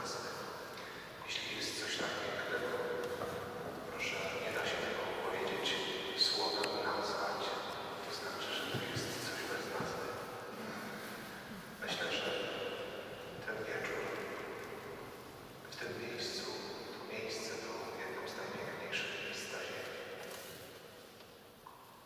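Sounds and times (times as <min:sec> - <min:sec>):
person speaking quietly with echo: 0:01.2 - 0:14.7, 0:15.7 - 0:20.0.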